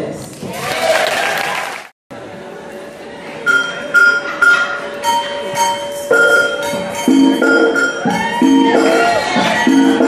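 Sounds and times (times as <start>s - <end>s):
steady room noise: 0.0s - 10.0s
audience applauding and cheering: 0.4s - 1.9s.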